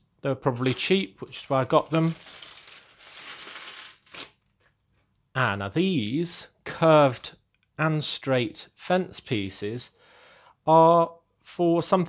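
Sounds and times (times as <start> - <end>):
plastic pieces clattering onto table: 0.6 - 5.1
plastic bag crinkling: 0.6 - 5.2.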